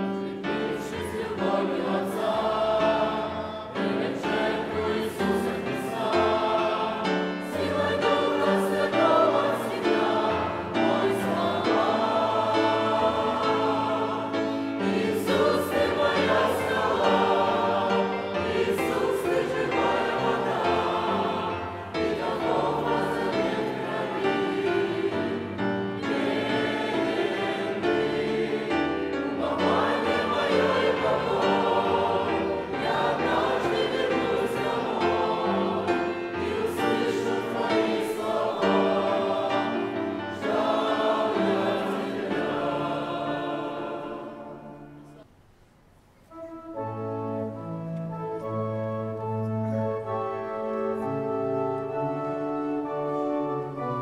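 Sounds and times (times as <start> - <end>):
choir singing a hymn: 0.0 - 45.3.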